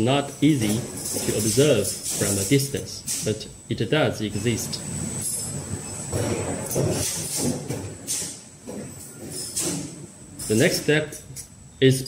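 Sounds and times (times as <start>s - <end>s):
low mechanical background: 0.0s - 12.0s.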